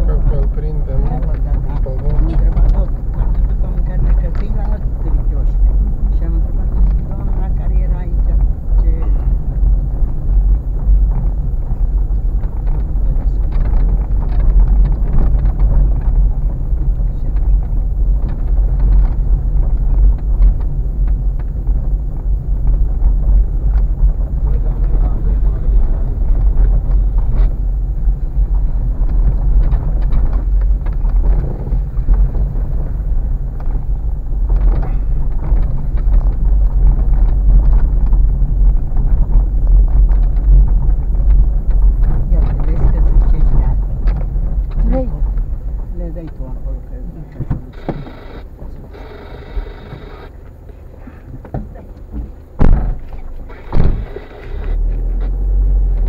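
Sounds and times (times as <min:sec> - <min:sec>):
car engine and tyres rumbling: 0:00.0 - 0:56.0
car rattling over bumps: 0:00.0 - 0:56.0.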